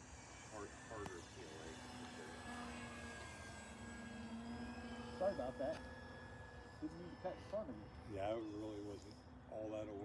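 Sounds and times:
model airplane motor drone: 0.0 - 10.0.

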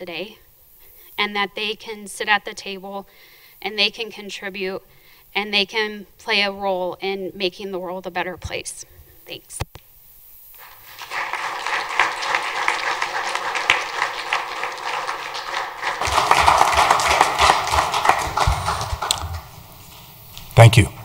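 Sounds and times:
audience applauding: 10.6 - 19.8.

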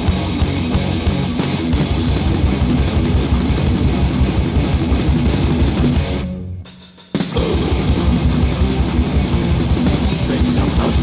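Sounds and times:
fast electric guitar riffing: 0.0 - 6.4, 7.3 - 11.0
heavy metal band playing: 0.0 - 11.0.

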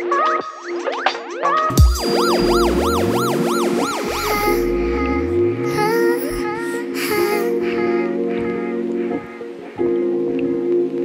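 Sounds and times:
warbling siren-like synth tone: 0.0 - 6.6
sustained synth chord: 1.7 - 7.6
low rising sweeps: 2.0 - 6.5.

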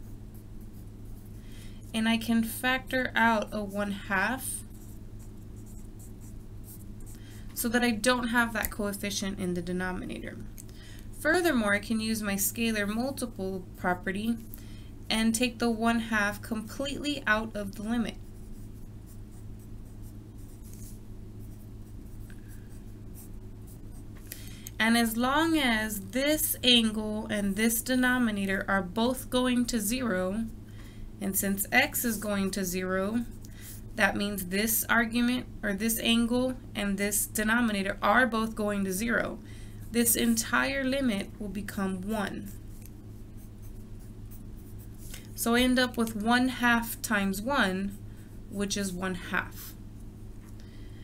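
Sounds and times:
pencil scratching on paper: 0.0 - 2.1, 3.9 - 7.3, 18.1 - 24.0, 41.9 - 48.0
steady low hum: 0.0 - 51.0
pencil writing on paper: 18.4 - 21.6.

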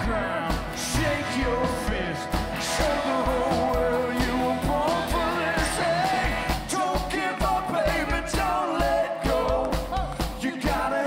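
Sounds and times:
strummed acoustic guitars: 0.0 - 9.6
live band playing country-rock: 0.0 - 11.0
person singing: 0.0 - 11.0
steady kick drum beat: 0.0 - 11.0.

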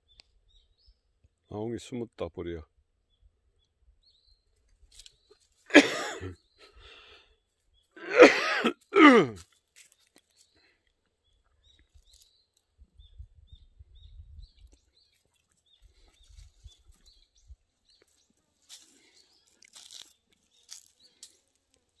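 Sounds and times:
animals scuffling on gravel: 9.4 - 10.6, 15.0 - 22.0.

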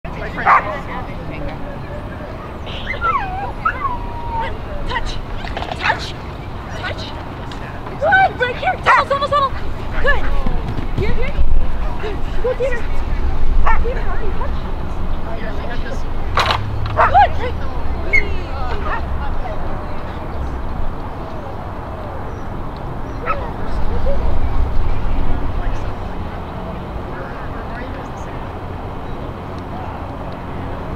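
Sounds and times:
voices in background: 0.1 - 30.9
dog barking: 0.4 - 0.8, 13.6 - 13.9, 17.0 - 17.3, 23.2 - 23.5
dog whining: 2.8 - 4.8.

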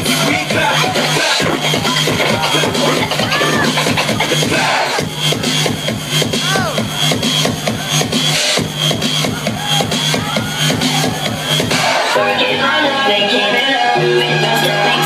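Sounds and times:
electronic dance music beat: 0.0 - 15.0
record scratching: 0.2 - 5.0.

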